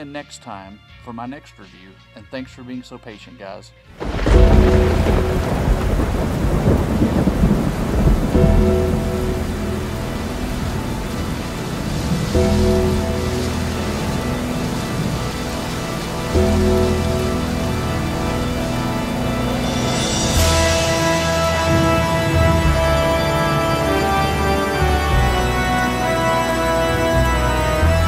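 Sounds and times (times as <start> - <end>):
rolling thunder: 3.9 - 28.0
steady rain: 3.9 - 28.0
dark music chords: 4.0 - 28.0.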